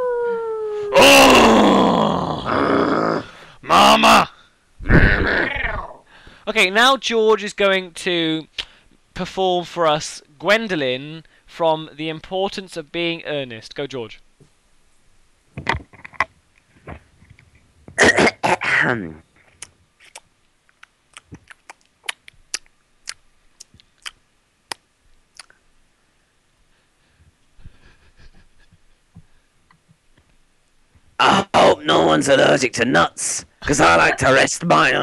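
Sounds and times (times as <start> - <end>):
person groaning: 0.0 - 6.0, 31.2 - 31.9
harsh coughs: 18.0 - 19.1
person clearing throat: 18.0 - 19.2.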